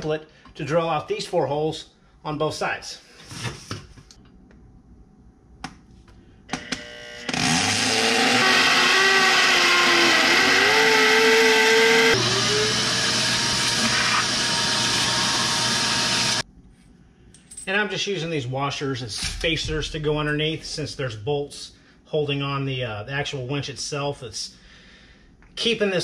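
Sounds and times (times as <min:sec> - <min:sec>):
electric drill boring into concrete: 0:06.5 - 0:16.4.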